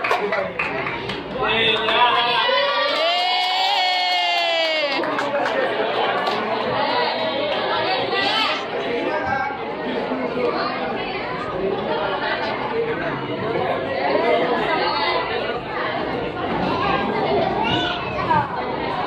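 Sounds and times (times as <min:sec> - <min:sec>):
crowd chatter in hall: 0:00.0 - 0:19.0.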